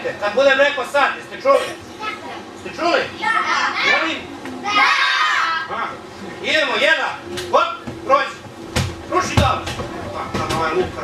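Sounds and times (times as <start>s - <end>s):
children's voices: 1.7s - 2.6s, 3.2s - 5.7s.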